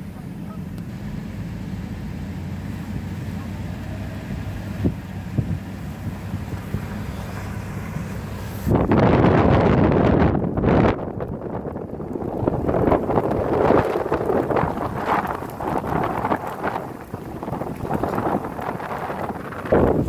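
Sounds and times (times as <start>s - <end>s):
steady low rumble: 0.0s - 20.0s
wind blast on microphone: 4.1s - 20.0s.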